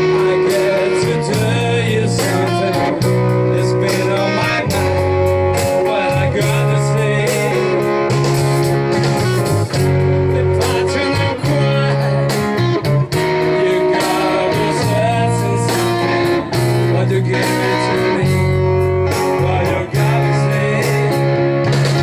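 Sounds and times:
electric guitar: 0.0 - 22.0
live band playing: 0.0 - 22.0.

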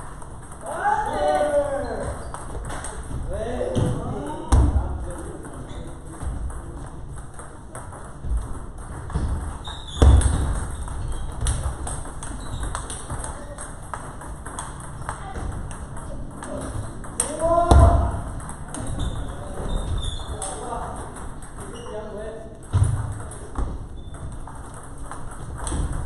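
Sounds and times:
table tennis balls clicking: 0.0 - 4.0, 4.6 - 26.0.

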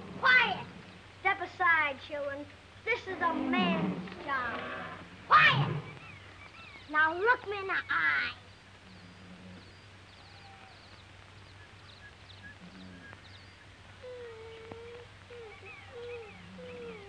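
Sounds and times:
old film soundtrack hum and hiss: 0.0 - 17.0
faint bird chirps: 4.2 - 17.0.

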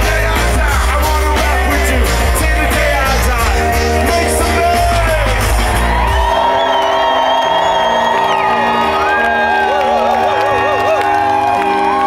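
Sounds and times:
drum and bass beat: 0.0 - 6.6
live band music: 0.0 - 6.7
crowd whooping and cheering: 2.6 - 12.0.

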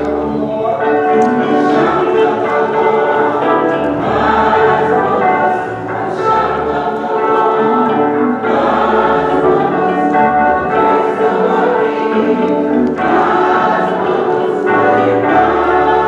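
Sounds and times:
choir singing gospel song: 0.0 - 16.0
electric guitar: 0.0 - 16.0.

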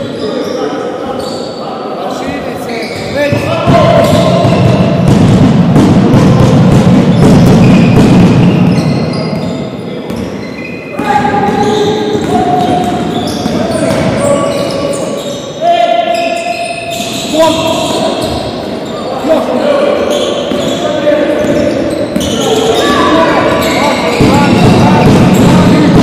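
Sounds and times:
sneakers squeaking on court: 2.2 - 5.1, 7.0 - 25.9
players calling out: 6.2 - 26.0.

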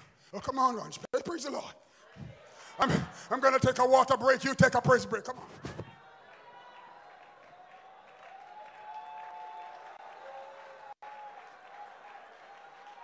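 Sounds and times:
congregation clapping and praising: 6.3 - 13.0.

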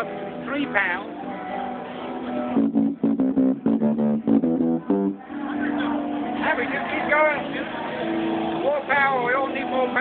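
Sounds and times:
electric bass guitar notes: 0.0 - 10.0.

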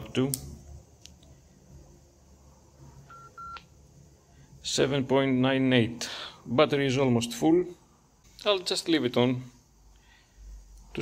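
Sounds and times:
radio keypad beeps: 3.1 - 3.6.

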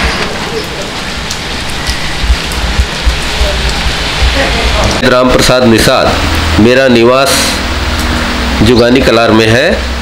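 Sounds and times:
steady outdoor hiss: 0.0 - 10.0
low rumble: 1.1 - 5.5
faint voices: 2.1 - 5.4.

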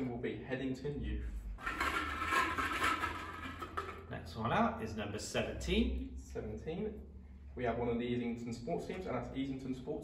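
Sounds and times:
plastic balls rattling in glass bowl: 1.6 - 4.1.

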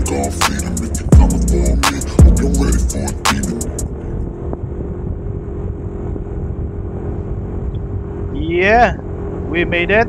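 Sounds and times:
road rumble: 0.0 - 10.0
wind: 0.0 - 10.0.

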